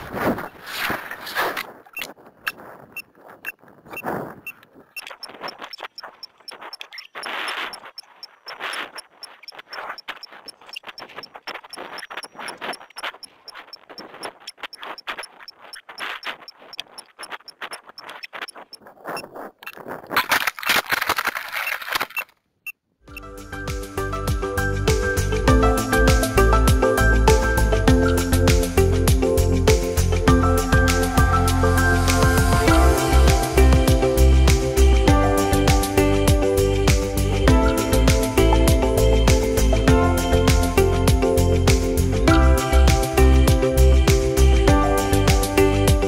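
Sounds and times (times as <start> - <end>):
fast even ticking: 4.4 - 19.6.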